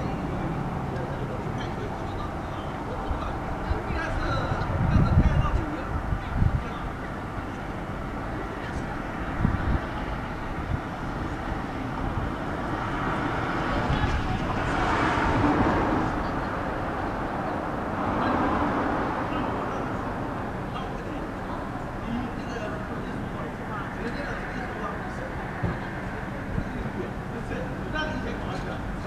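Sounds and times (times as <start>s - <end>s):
traffic noise: 0.0s - 29.0s.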